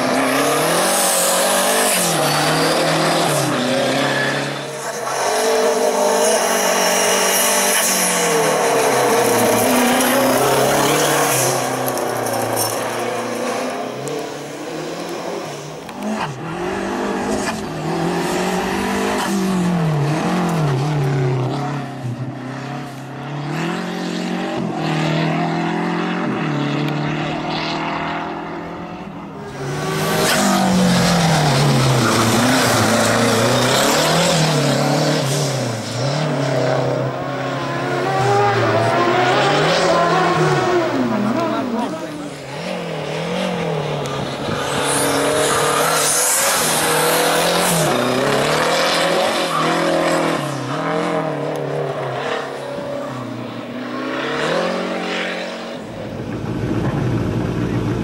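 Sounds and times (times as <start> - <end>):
car engine revving hard: 0.0 - 58.0.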